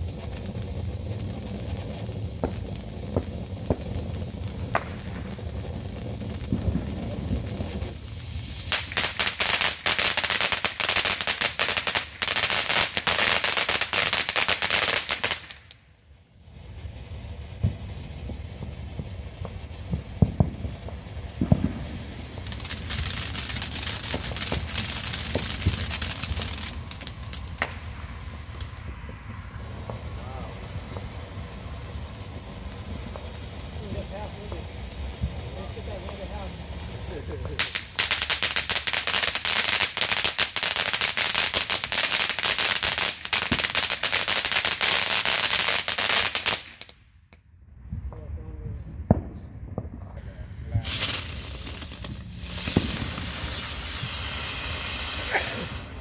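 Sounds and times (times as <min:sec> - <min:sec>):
fountain fireworks hissing and crackling: 0:00.0 - 0:47.0, 0:48.2 - 0:56.0.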